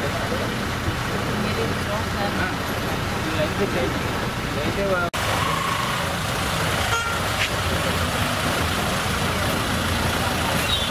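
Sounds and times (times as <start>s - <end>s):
people talking: 0.0s - 5.1s
road traffic rumble: 0.0s - 10.9s.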